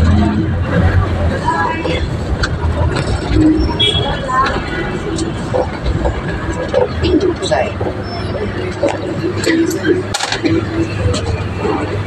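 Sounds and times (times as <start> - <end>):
engine and road rumble: 0.0 - 12.0
indistinct voices: 0.0 - 12.0.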